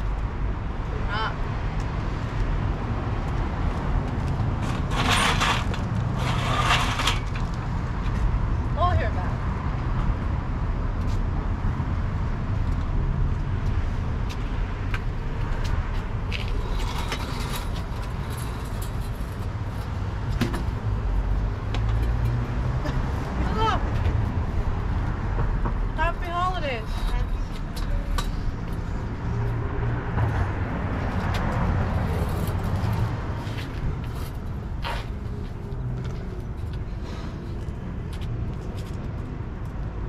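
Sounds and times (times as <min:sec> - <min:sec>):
cars passing: 0:00.0 - 0:40.0.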